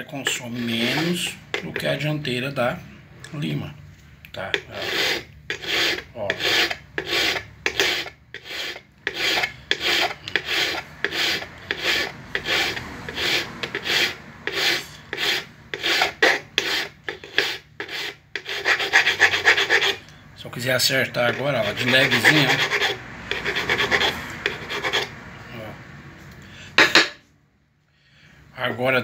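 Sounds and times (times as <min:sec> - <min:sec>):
hand file rasping on steel: 0:00.2 - 0:02.0, 0:04.5 - 0:20.0, 0:21.2 - 0:25.1.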